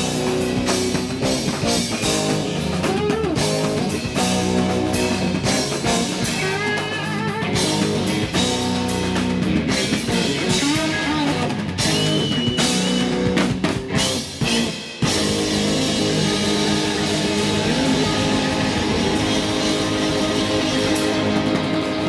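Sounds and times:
drum kit: 0.0s - 22.0s
electric guitars: 0.0s - 22.0s
lead guitar bending notes: 0.0s - 22.0s.

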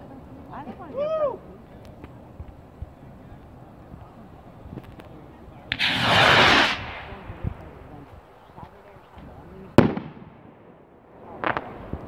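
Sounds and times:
skyrocket launch pop: 5.7s - 7.2s
rocket rushing hiss: 5.7s - 8.0s.

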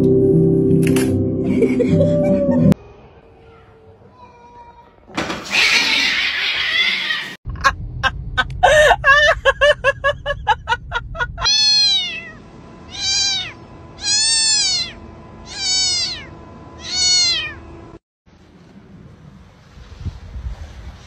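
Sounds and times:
cat meowing: 11.4s - 17.6s.

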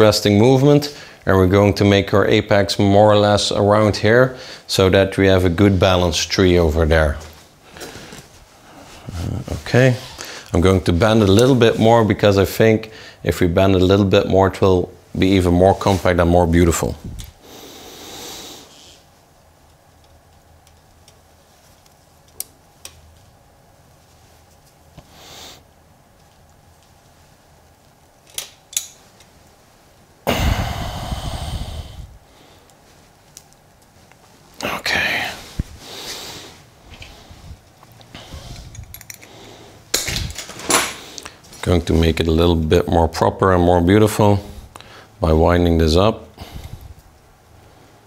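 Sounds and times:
noisy breath out: 30.3s - 32.7s, 46.4s - 47.0s.

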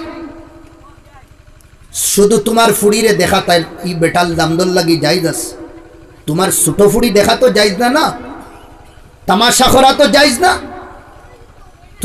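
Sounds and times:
amplified man's voice echoing: 0.0s - 0.6s, 2.0s - 8.4s, 9.2s - 11.1s.

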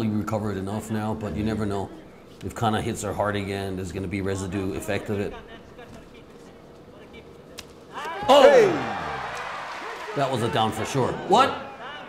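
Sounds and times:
faint arena background: 0.0s - 12.0s.

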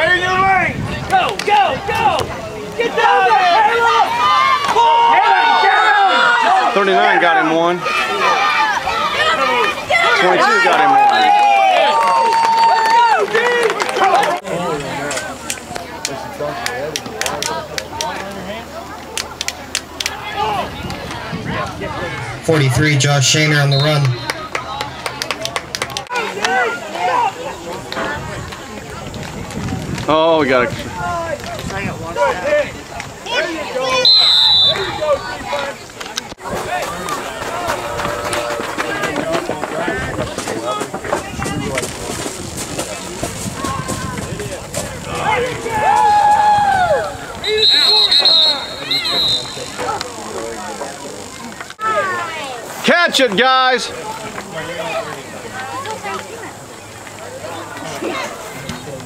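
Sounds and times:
spectators and players calling out: 0.0s - 59.0s.

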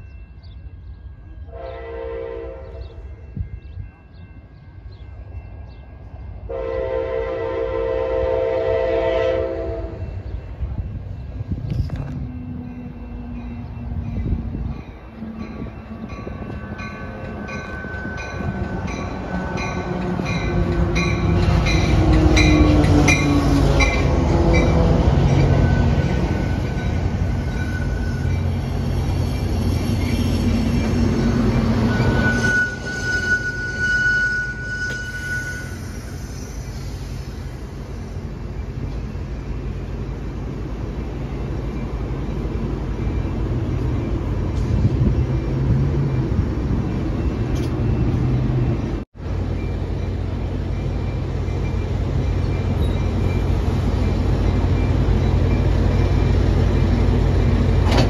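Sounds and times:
train rumble: 0.0s - 58.0s
train horn: 1.4s - 3.1s, 6.5s - 10.2s, 31.8s - 35.9s
train wheel clatter: 52.4s - 58.0s.

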